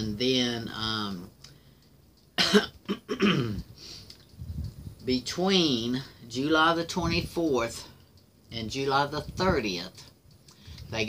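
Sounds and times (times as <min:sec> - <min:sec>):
woman clearing her throat: 0:02.4 - 0:03.7.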